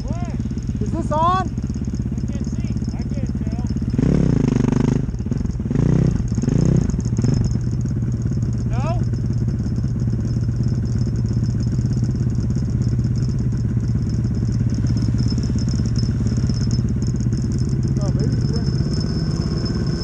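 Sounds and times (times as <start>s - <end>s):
snowmobile engines idling: 0.0s - 20.0s.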